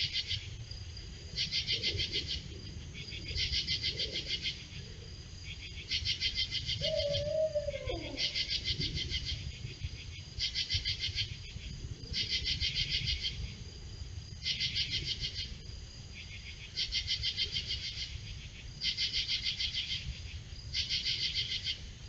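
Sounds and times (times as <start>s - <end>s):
insects chirping in pulsed bursts: 0.0s - 22.0s.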